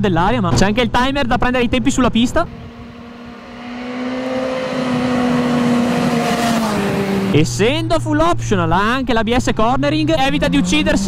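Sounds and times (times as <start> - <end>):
motorcycle engine at high revs: 2.4 - 7.6.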